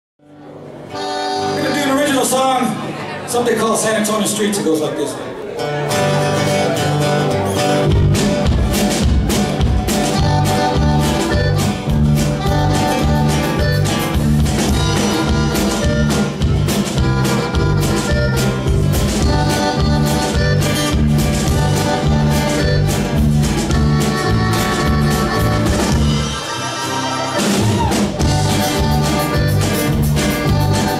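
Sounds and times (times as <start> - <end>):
acoustic guitars: 0.2 - 30.9
accordion: 0.4 - 2.8, 5.6 - 30.9
drums: 5.9 - 30.9
electric bass: 6.2 - 30.9.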